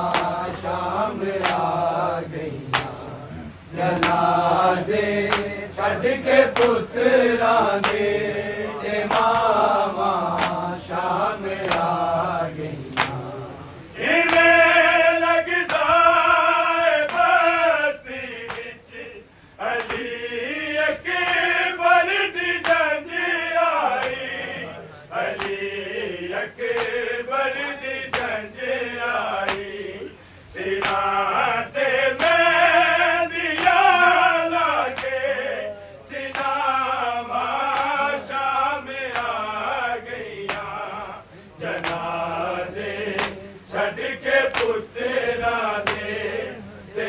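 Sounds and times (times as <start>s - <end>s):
men chanting a lament: 0.0s - 47.0s
chest-beating slaps: 0.1s - 0.8s, 1.4s - 1.8s, 2.7s - 3.0s, 3.9s - 4.3s, 5.2s - 5.6s, 7.8s - 8.1s, 10.2s - 10.7s, 11.6s - 11.9s, 12.9s - 13.3s, 14.2s - 14.6s, 18.5s - 18.7s, 25.2s - 25.7s, 28.1s - 28.4s, 29.4s - 29.7s, 30.7s - 31.2s, 34.9s - 35.3s, 36.2s - 36.6s, 40.4s - 40.8s, 41.6s - 42.3s, 43.1s - 43.4s, 44.5s - 44.8s, 45.8s - 46.2s.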